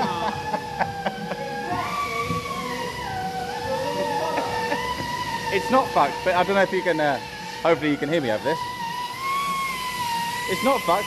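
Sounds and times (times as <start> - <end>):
workshop machine whining: 0.0 - 11.0.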